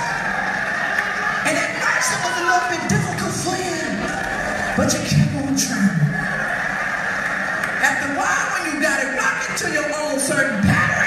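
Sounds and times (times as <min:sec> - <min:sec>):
comedian speaking: 0:01.4 - 0:04.2, 0:04.8 - 0:06.2, 0:07.8 - 0:11.0.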